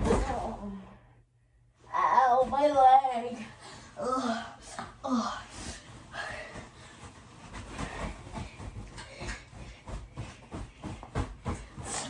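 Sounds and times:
thumps on a mattress: 7.1s - 12.0s.

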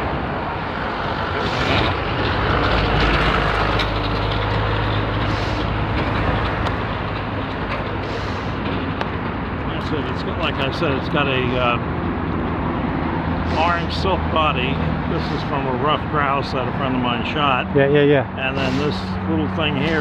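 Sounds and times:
traffic noise: 0.0s - 20.0s
truck driving past: 0.0s - 20.0s.

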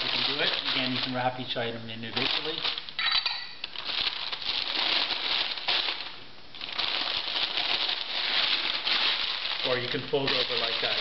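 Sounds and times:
newspaper rustling and crinkling: 0.0s - 3.0s, 3.6s - 11.0s.

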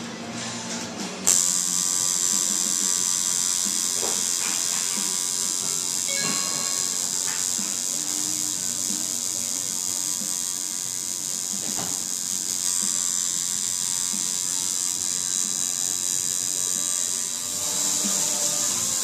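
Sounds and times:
tattoo machine buzzing: 1.2s - 19.0s.

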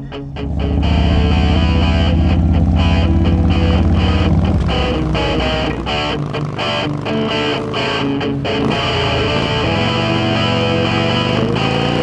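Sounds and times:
electric guitar rock music: 0.0s - 12.0s
motorcycle engine running: 0.0s - 12.0s.

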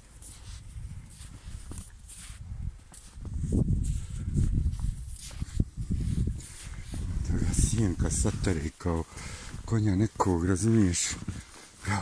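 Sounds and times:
hooves crunching snow: 0.0s - 12.0s.

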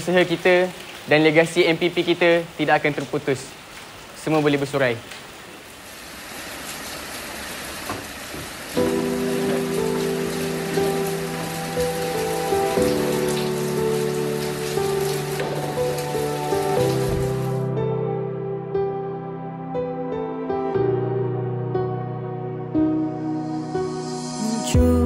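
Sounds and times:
steady rain falling: 0.0s - 17.7s
slow soft music with held chords: 8.8s - 25.0s.

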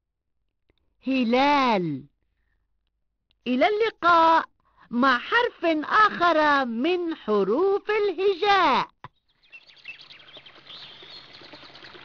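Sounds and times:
small birds chirping: 9.0s - 12.0s.

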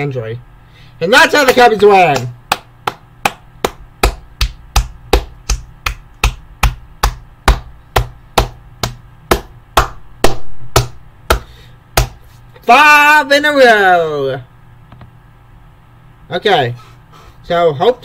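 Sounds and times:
person clapping hands: 2.1s - 12.2s.

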